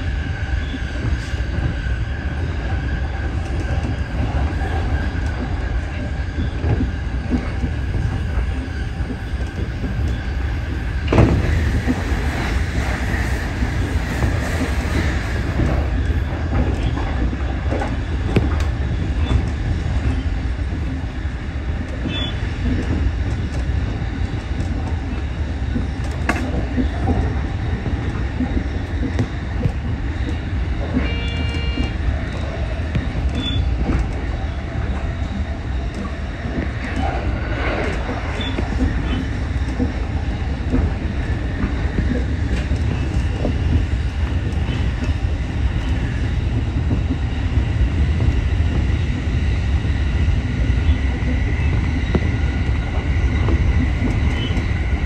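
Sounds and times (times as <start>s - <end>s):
train rumble from inside: 0.0s - 55.0s
train wheel clicks: 3.2s - 55.0s
short tone: 31.0s - 31.9s.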